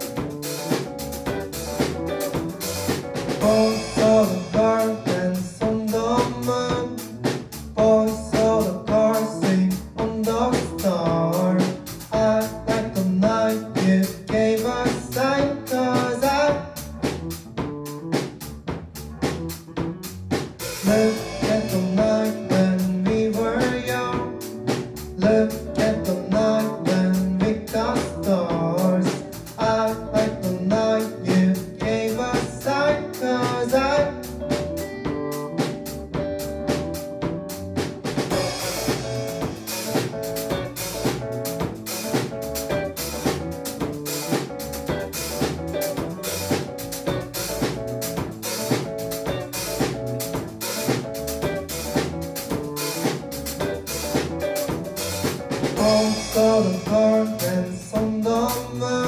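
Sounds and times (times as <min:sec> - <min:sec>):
electric guitar: 0:00.0 - 0:18.4, 0:19.2 - 0:59.0
bass guitar: 0:00.0 - 0:59.0
drum kit with cymbals: 0:00.0 - 0:59.0.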